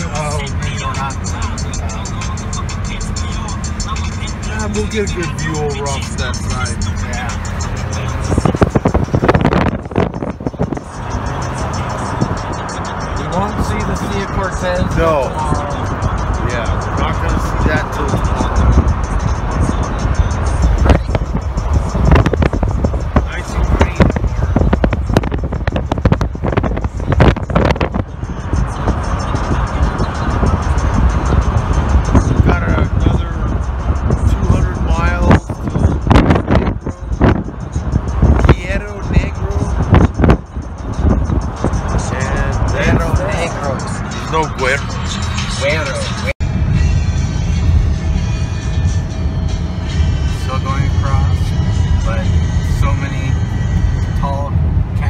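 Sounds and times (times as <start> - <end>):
car road and wind noise: 0.0 - 55.0.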